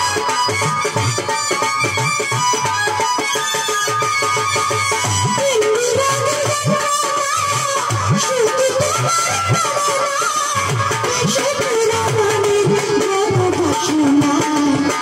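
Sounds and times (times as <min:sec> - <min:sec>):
dhol drum beating: 0:00.0 - 0:15.0.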